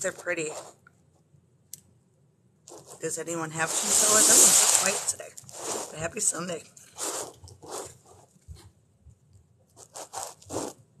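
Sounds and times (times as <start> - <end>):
short rasping scrapes: 2.7 - 8.3, 9.8 - 10.8.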